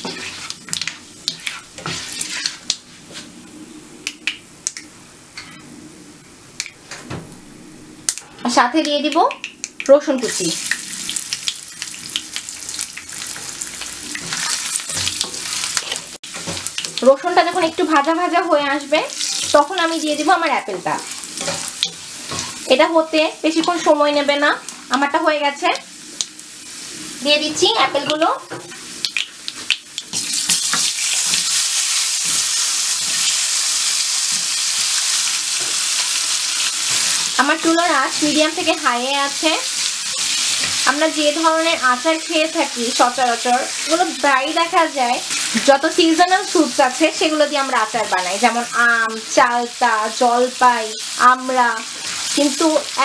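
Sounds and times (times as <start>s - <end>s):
spatula stirring: 0.0s - 2.8s, 19.1s - 20.0s, 20.7s - 22.7s
garlic sizzling in hot oil: 0.0s - 3.3s, 9.8s - 53.0s.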